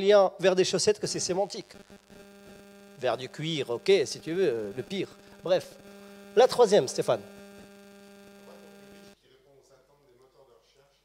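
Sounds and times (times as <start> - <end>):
electrical mains hum: 0.9 - 9.2.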